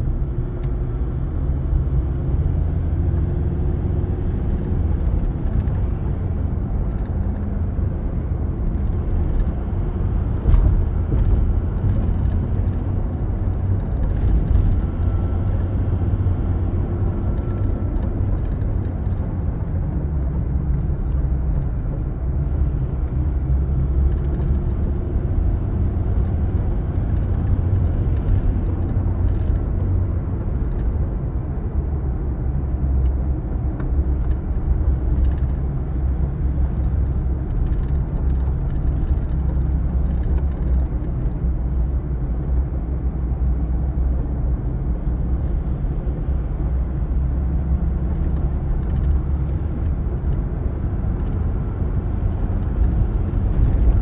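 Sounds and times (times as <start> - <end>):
engine and tyre rumble: 0.0 - 54.0
faint clicks and rattles: 4.2 - 9.6, 10.3 - 15.8, 16.9 - 19.4, 24.0 - 31.0, 32.8 - 41.5, 48.0 - 54.0.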